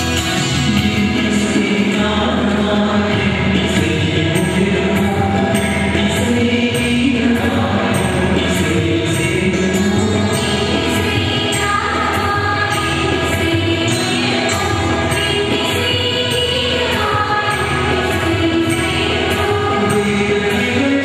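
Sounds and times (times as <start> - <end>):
steady beat: 0.0 - 16.1
group singing a hymn: 1.6 - 21.0.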